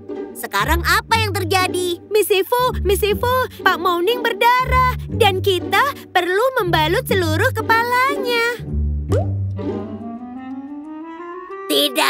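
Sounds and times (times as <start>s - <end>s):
quick rising plop: 9.1s - 9.6s.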